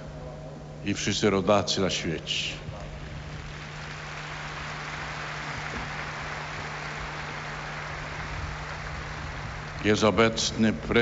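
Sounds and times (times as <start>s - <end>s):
crowd applauding: 2.9s - 11.0s.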